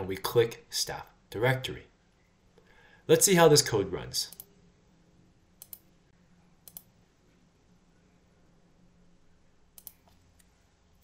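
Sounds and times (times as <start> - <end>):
faint computer mouse clicks: 5.6 - 5.9, 6.6 - 6.9, 9.8 - 10.5.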